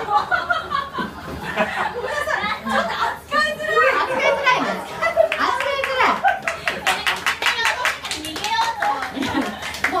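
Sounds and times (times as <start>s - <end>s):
crowd clapping: 5.1s - 10.0s.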